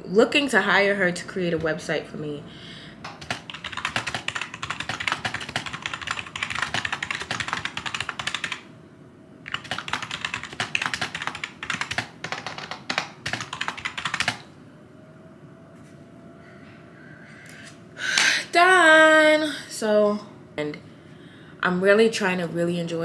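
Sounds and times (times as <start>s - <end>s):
fast typing on keyboard: 3.1s - 8.6s, 9.5s - 14.4s.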